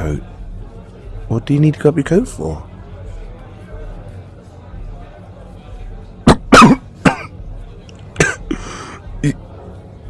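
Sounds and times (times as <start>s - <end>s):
man coughing: 6.3s - 7.4s, 8.2s - 9.4s.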